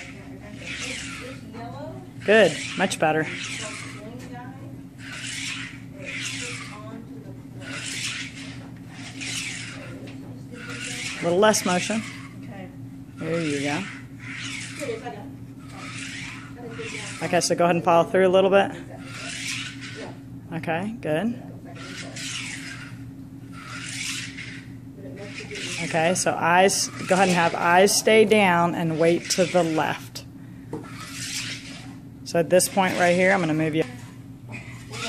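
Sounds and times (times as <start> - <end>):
low room hum: 0.0 - 35.0.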